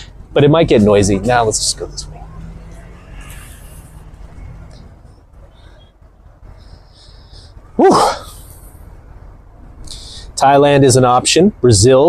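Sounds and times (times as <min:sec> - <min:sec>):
faint street background: 0:00.0 - 0:12.0
man exhaling whew: 0:07.8 - 0:08.6.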